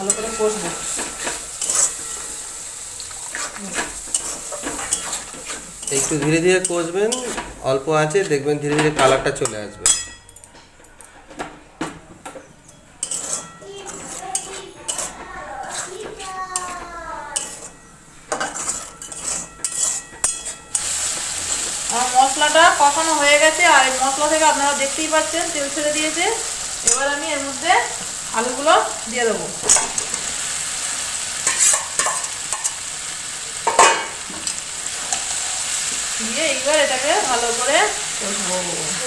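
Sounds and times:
spatula scraping metal pan: 0:00.0 - 0:08.4, 0:13.0 - 0:29.0, 0:29.6 - 0:32.8
food sizzling in oil: 0:00.0 - 0:10.2, 0:13.0 - 0:39.0.

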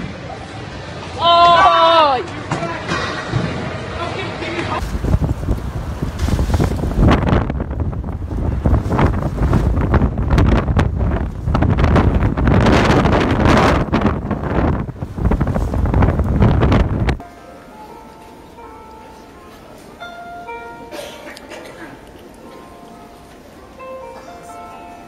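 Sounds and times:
wind buffeting microphone: 0:04.8 - 0:17.3.

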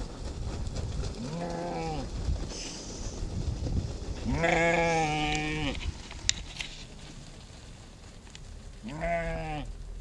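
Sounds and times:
goat bleating: 0:04.3 - 0:05.8, 0:08.8 - 0:09.7.

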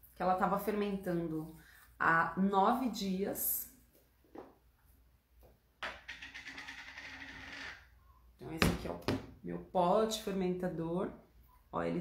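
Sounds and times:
rasping scrape: 0:05.9 - 0:07.9.

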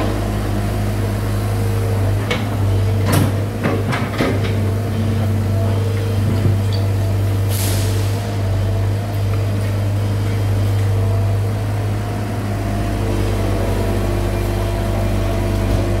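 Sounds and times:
excavator diesel engine running: 0:00.0 - 0:16.0.

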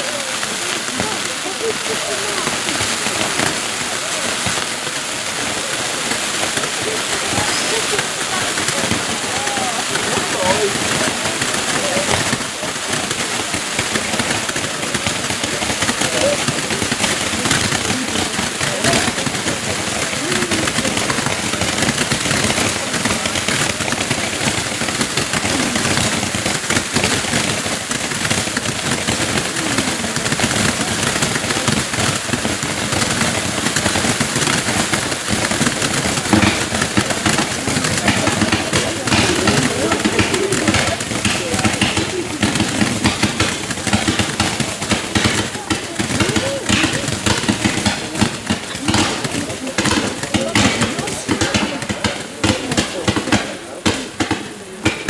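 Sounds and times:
fireworks hissing and crackling: 0:00.0 - 0:55.0.

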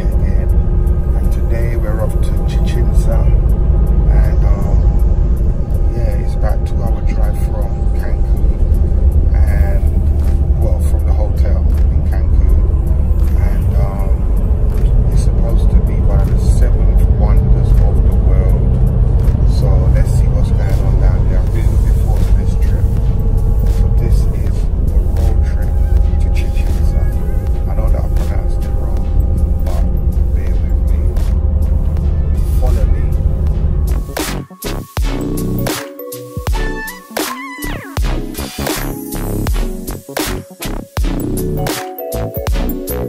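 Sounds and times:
man talking: 0:00.0 - 0:05.0, 0:05.8 - 0:33.5
coach engine rumble: 0:00.0 - 0:35.7
road noise: 0:00.0 - 0:36.1
background music: 0:00.0 - 0:43.0.

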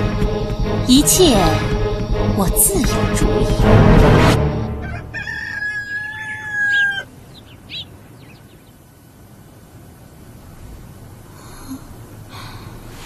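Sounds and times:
rooster crowing: 0:04.6 - 0:07.2.

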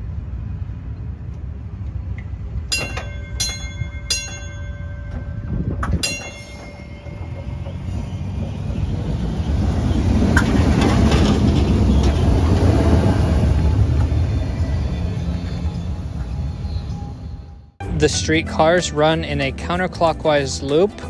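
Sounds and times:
streetcar wheels rumbling on rails: 0:00.0 - 0:21.0
streetcar bell ringing: 0:02.6 - 0:21.0.

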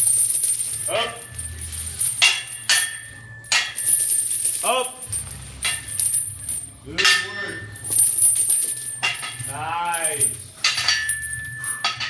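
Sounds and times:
metal chains clanking: 0:00.0 - 0:12.0.

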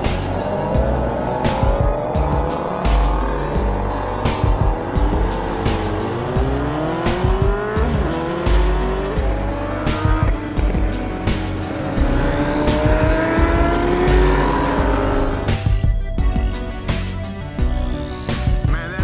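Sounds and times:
motorcycle engine accelerating: 0:00.0 - 0:16.2
background music with beat: 0:00.0 - 0:19.0.

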